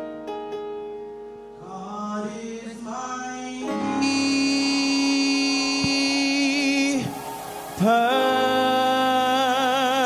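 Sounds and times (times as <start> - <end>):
person singing a long note: 1.6 - 7.2, 7.8 - 10.0
worship band playing: 1.7 - 10.0.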